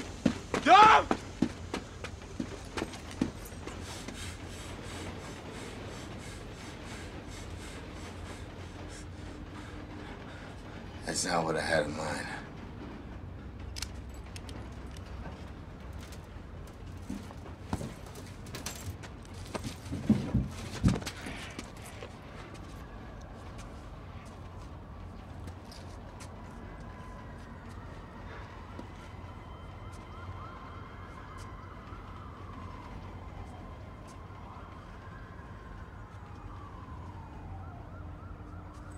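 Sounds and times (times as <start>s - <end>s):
distant police sirens wailing: 0.0s - 38.9s.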